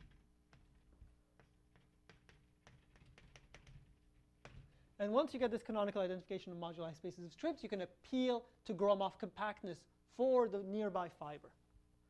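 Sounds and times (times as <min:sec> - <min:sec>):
chalk tapping on blackboard: 0:00.0 - 0:04.8.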